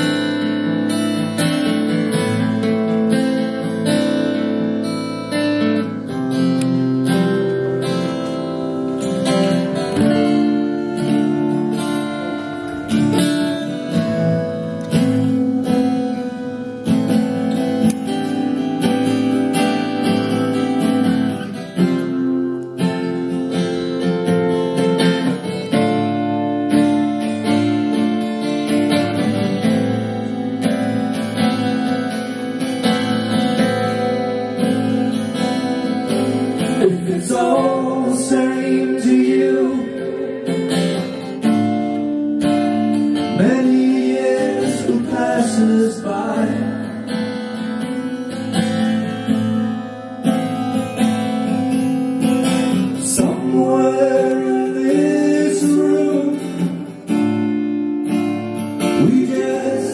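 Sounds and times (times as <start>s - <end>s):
acoustic guitars playing: 0.0s - 59.9s.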